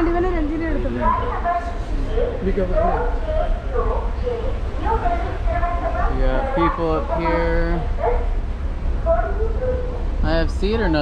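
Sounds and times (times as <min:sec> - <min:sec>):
passenger's voice: 0:00.0 - 0:08.0
train carriage rumble: 0:00.0 - 0:11.0.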